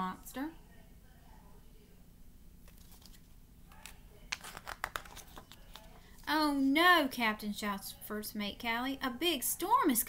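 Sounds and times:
paper crackles: 0:02.6 - 0:06.3
paper pages rustling: 0:02.6 - 0:06.3.

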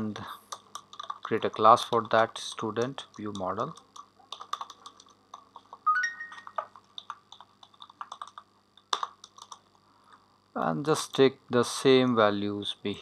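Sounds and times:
computer keyboard typing: 0:00.5 - 0:09.7.

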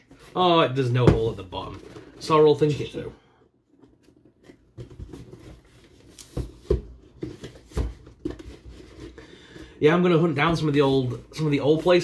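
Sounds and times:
cardboard box handled by hand: 0:03.7 - 0:09.2.

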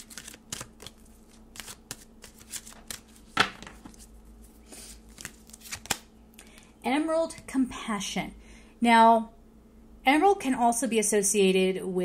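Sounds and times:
cards being shuffled: 0:00.0 - 0:06.7.

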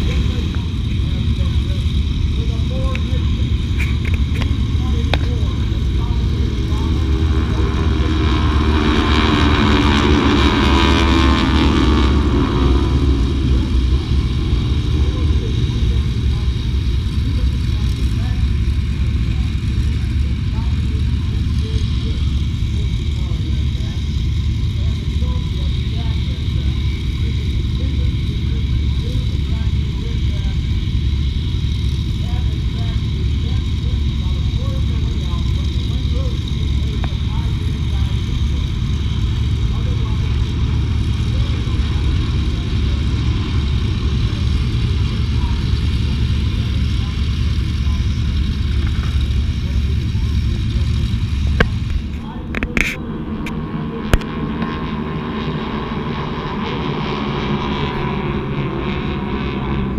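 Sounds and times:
low rumble: 0:00.0 - 0:59.9
propeller planes droning overhead: 0:00.0 - 0:59.9.

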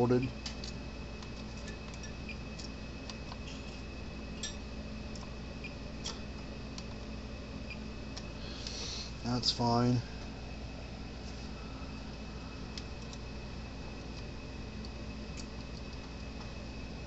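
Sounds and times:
steady low hum: 0:00.0 - 0:17.0
thin high whine: 0:07.2 - 0:15.3.

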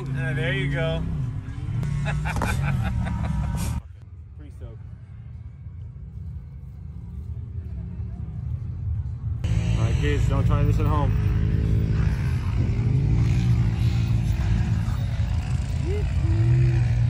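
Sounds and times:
vehicle engine rumble: 0:00.0 - 0:17.0
voices and laughter: 0:01.8 - 0:03.8.

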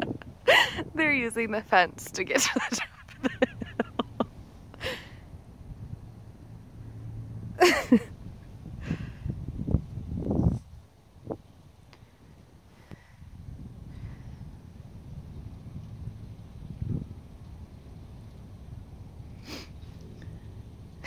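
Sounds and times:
wind on microphone: 0:00.0 - 0:06.2, 0:07.4 - 0:20.5.

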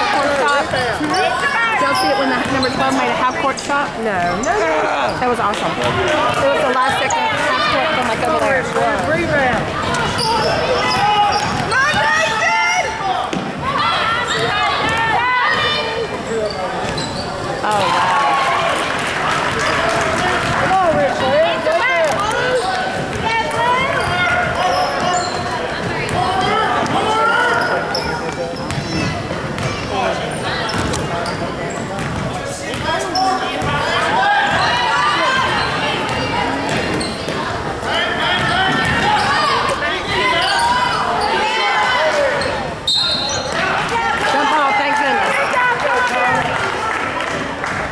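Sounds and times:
voices calling out and talking: 0:00.0 - 0:47.9.

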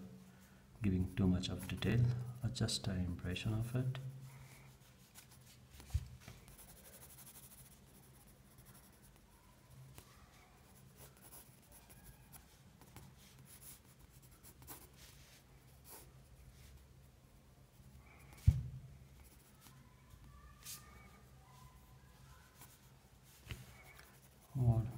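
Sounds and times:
pencil scratching on paper: 0:06.2 - 0:09.3, 0:10.6 - 0:16.8, 0:23.5 - 0:24.9.

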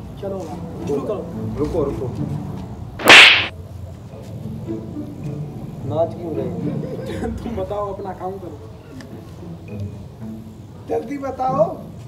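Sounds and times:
hand slapping plastic helmet: 0:03.0 - 0:03.5.

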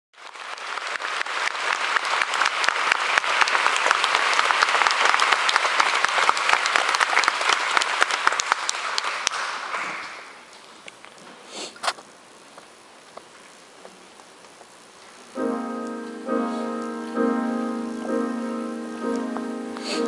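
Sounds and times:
audience applauding: 0:00.1 - 0:10.5.

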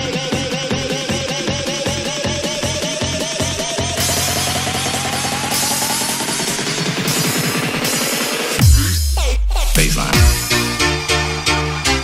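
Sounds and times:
held synth bass: 0:08.6 - 0:11.0.

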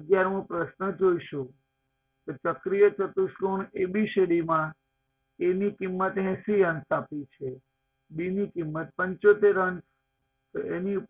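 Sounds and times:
man speaking: 0:08.2 - 0:09.8, 0:10.6 - 0:11.0.

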